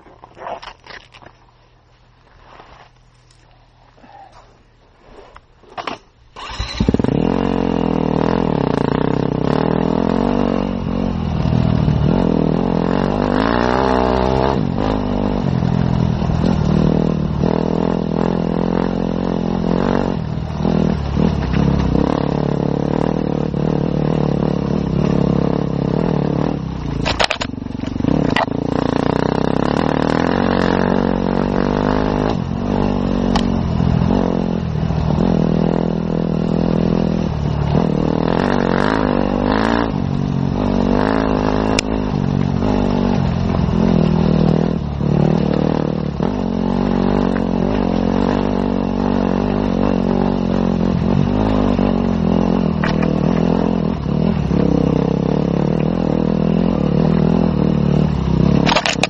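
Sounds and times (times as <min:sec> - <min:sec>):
motorcycle engine revving: 0:06.4 - 0:59.0.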